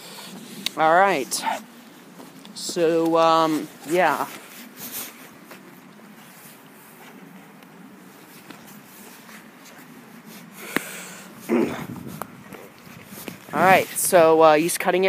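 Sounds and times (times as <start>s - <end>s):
footsteps on leaf litter: 1.4s - 7.2s.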